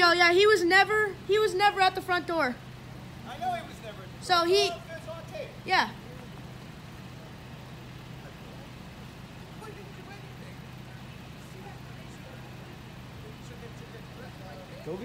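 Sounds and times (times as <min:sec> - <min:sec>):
faint voices talking: 0:00.0 - 0:15.0
vehicle engine idling: 0:00.0 - 0:15.0.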